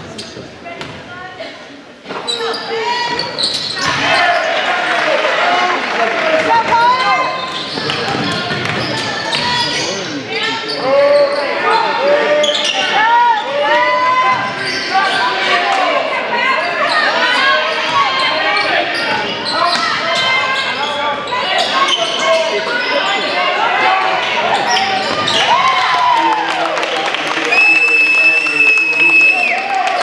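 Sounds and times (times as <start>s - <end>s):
people shouting and calling out: 2.2s - 26.8s.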